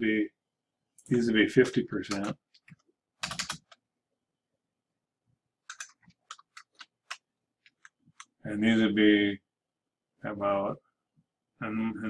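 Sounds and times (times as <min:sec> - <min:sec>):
keyboard keystrokes clicking: 0:01.6 - 0:03.8, 0:05.7 - 0:08.3.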